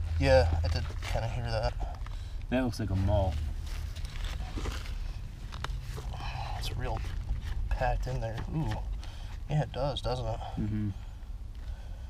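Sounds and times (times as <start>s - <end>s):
soil scraping and crunching: 0.0s - 10.2s.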